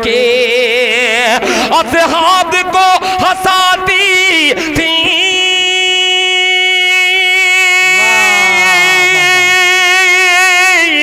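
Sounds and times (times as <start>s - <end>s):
man singing long note: 5.5s - 10.9s.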